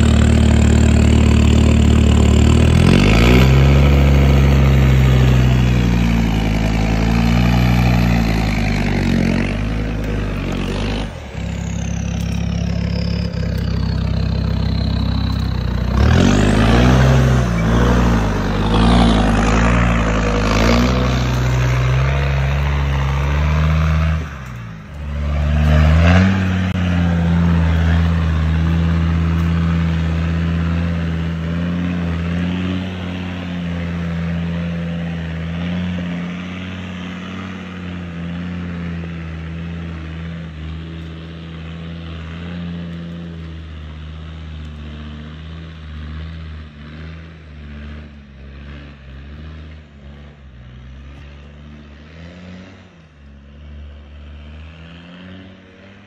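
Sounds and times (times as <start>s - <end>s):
diesel engine revving under load: 0.0s - 56.0s.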